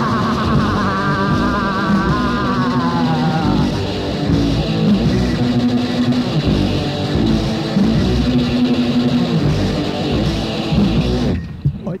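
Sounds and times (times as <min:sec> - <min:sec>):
punk rock band playing: 0:00.0 - 0:11.8.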